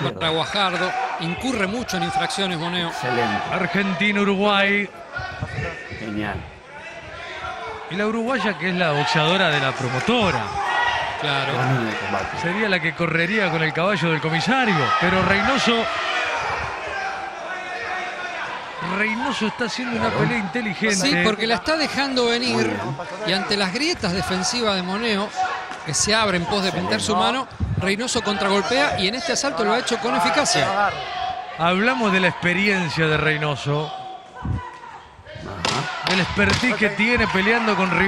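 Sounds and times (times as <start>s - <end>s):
faint background voices: 11.4s - 12.4s.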